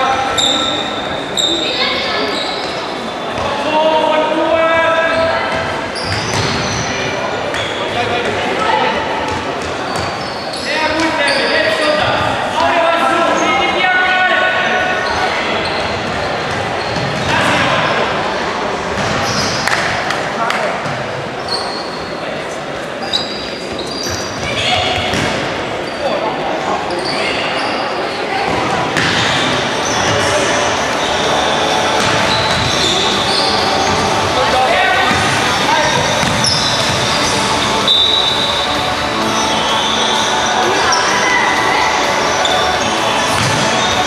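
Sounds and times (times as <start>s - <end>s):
shoes squeaking on hall floor: 0.0s - 13.8s, 14.9s - 18.0s, 19.0s - 19.9s, 20.8s - 44.0s
echoing voices and calls: 0.0s - 44.0s.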